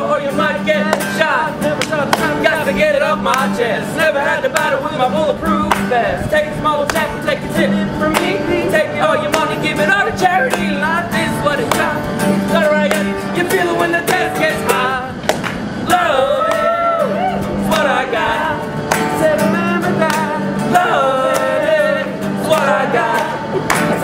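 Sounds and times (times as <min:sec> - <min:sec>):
acoustic guitar strumming: 0:00.0 - 0:24.0
men singing: 0:00.0 - 0:24.0.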